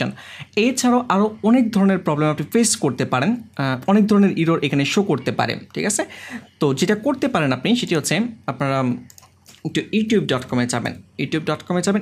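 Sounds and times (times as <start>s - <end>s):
man speaking: 0.0s - 9.1s.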